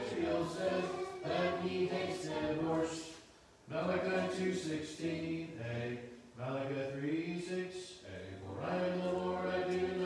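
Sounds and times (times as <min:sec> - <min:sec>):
group reciting in unison: 0:00.0 - 0:10.0.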